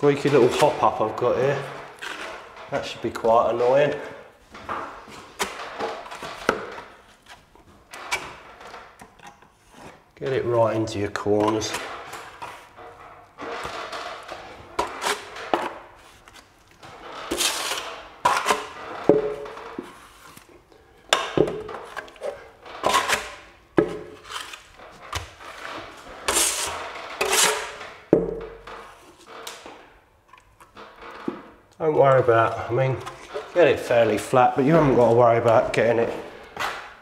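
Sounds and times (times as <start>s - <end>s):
trowel scraping plaster: 0.0s - 3.7s, 10.8s - 20.6s, 21.4s - 28.1s.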